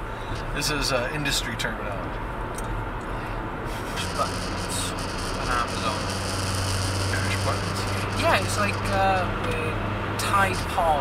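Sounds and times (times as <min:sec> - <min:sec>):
car engine hum: 0:00.0 - 0:11.0
road and tyre rumble: 0:00.0 - 0:11.0.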